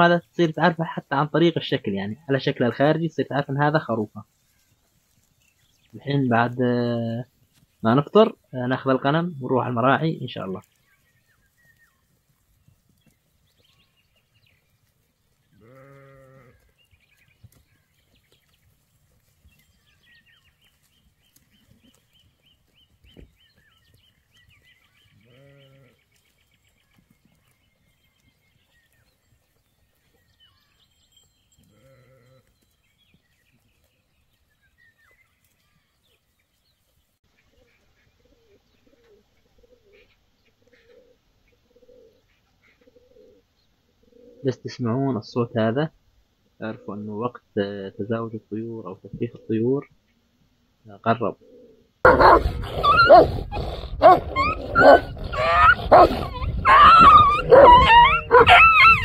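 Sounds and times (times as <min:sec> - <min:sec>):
small birds twittering: 0:00.1 - 0:45.7, 0:50.9 - 0:59.0
faint sheep bleating: 0:15.5 - 0:16.8, 0:25.2 - 0:26.0, 0:31.6 - 0:32.5
pigeons cooing: 0:37.5 - 0:44.6, 0:51.3 - 0:59.0.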